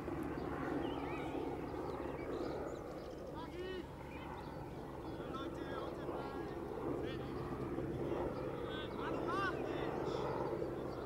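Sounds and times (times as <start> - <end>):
birds chirping: 0.1 - 11.0
faint distant voices: 1.0 - 11.0.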